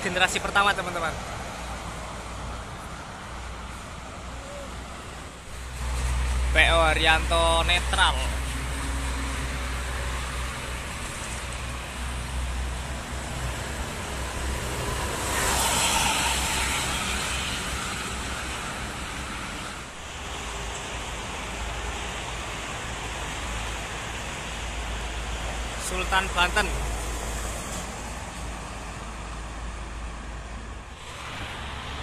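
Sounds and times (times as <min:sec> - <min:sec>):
highway traffic tyre noise: 0:00.0 - 0:32.0.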